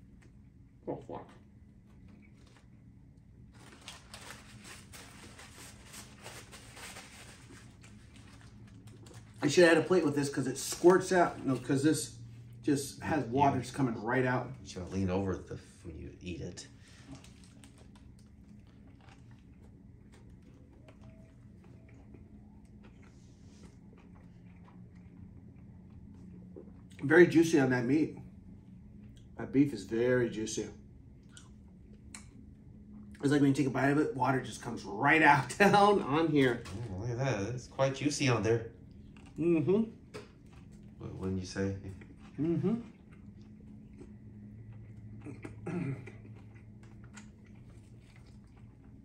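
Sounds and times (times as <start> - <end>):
low steady hum: 0.0 - 49.0
paper wrapper crackling: 3.4 - 10.0, 17.0 - 20.9
wet chewing clicks: 41.8 - 49.0.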